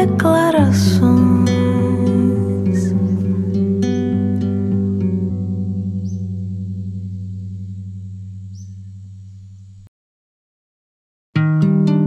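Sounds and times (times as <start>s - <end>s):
acoustic guitar chord ringing: 0.0s - 9.3s, 11.4s - 12.0s.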